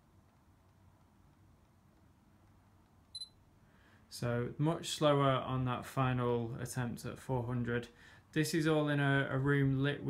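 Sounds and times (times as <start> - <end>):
camera focus beep: 3.1 - 3.4.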